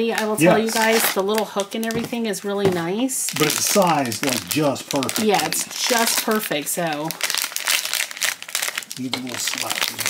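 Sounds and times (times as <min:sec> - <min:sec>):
foil pouch crinkling: 0:00.0 - 0:02.6, 0:03.2 - 0:10.0.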